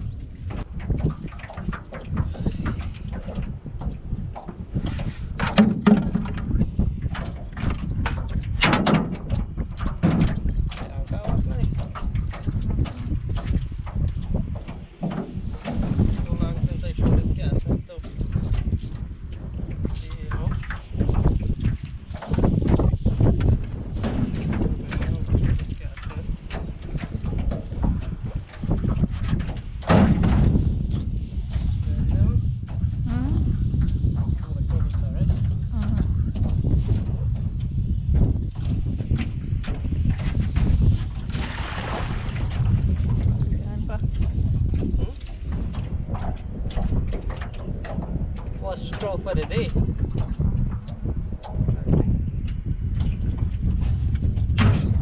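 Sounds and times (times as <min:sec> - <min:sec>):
wind rumbling on microphone: 0:00.0 - 0:55.0
net knocking in metal boat: 0:00.5 - 0:17.2, 0:20.4 - 0:31.7, 0:53.6 - 0:55.0.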